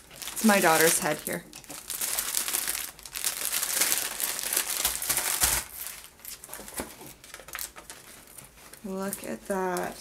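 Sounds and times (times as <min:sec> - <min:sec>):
plastic wrapping crinkling: 0:00.0 - 0:10.0.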